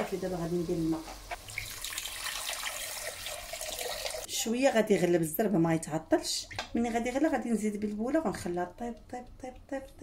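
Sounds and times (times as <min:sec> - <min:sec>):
water pouring into a pot: 0:01.4 - 0:04.3.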